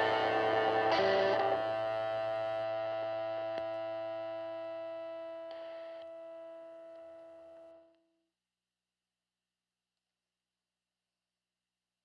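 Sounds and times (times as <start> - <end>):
distorted electric guitar chord: 0.0 - 6.2.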